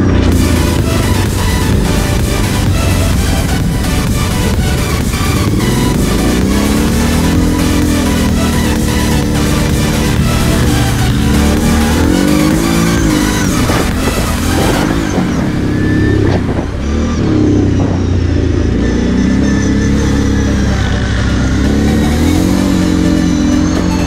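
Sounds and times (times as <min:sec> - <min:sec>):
quad engine revving: 0:00.0 - 0:24.0.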